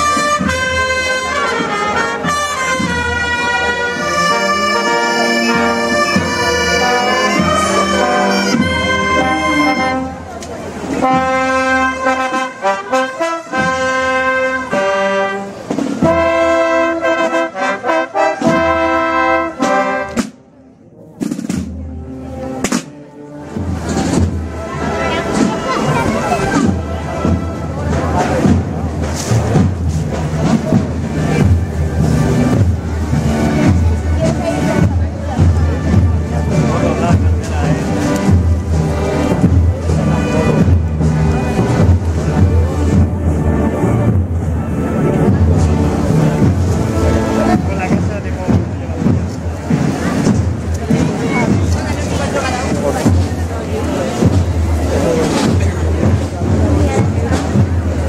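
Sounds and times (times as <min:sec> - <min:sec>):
voices: 0:00.0 - 0:20.2, 0:23.5 - 0:58.0
drumming: 0:00.0 - 0:20.4, 0:21.2 - 0:58.0
brass band playing slow march: 0:00.0 - 0:58.0.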